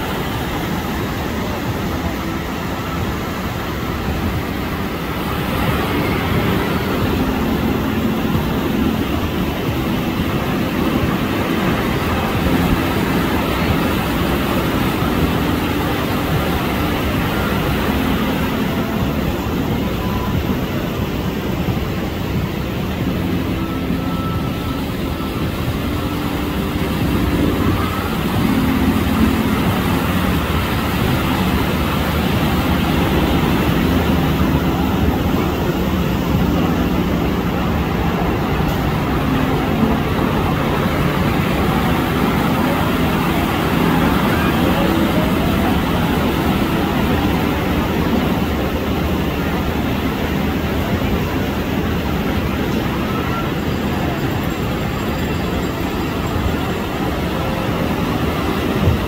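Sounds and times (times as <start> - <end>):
loud wash of noise: 0.0 - 59.0
low engine-like drone: 0.0 - 59.0.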